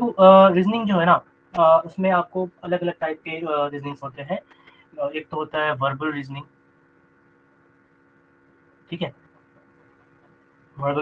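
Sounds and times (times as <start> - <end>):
man speaking: 0.0 - 4.4, 5.0 - 6.4, 8.9 - 9.1, 10.8 - 11.0
faint electrical hum: 0.0 - 11.0.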